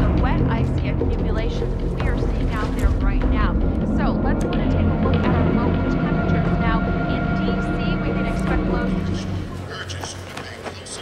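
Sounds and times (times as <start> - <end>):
steady low rumble: 0.0 - 9.9
background music tones: 0.0 - 11.0
indistinct voices: 0.0 - 11.0.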